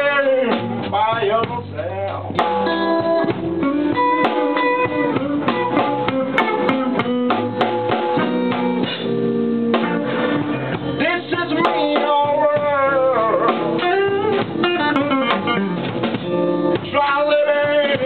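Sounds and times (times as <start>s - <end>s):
electric blues band playing: 0.0s - 18.0s
electric guitar picking: 1.6s - 18.0s
person singing: 11.0s - 15.5s.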